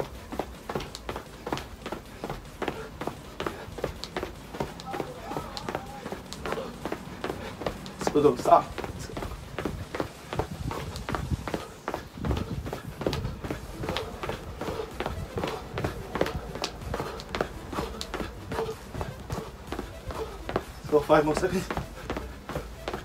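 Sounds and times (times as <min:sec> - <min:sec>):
running footsteps on paving: 0:00.0 - 0:23.0.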